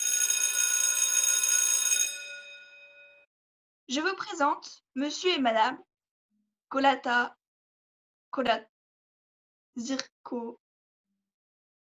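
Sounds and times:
bell-like chime: 0.0s - 3.3s.

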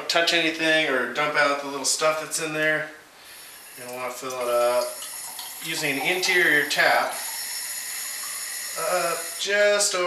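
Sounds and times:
faucet water stream into bottle: 3.4s - 9.6s.

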